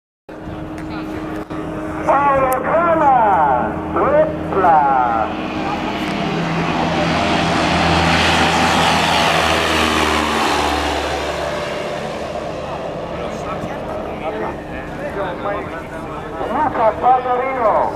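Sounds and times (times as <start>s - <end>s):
propeller aircraft engine: 0.3s - 17.9s.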